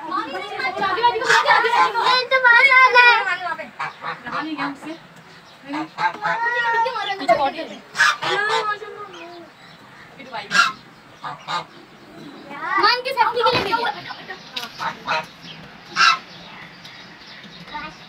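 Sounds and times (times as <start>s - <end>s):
goose honking: 1.1s - 2.4s, 7.9s - 9.1s, 10.3s - 11.8s, 14.8s - 16.4s.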